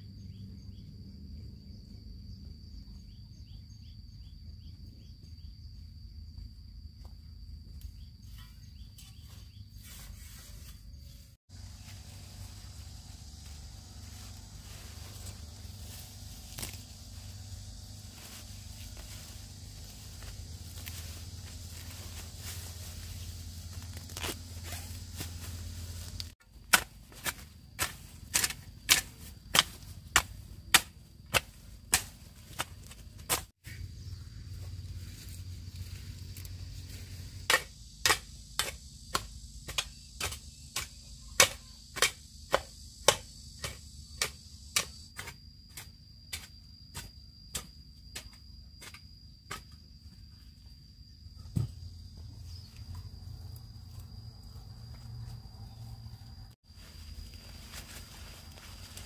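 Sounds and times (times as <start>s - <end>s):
high insect drone: 0.0s - 59.0s
hoe chopping dry soil: 11.5s - 33.8s, 37.4s - 49.8s.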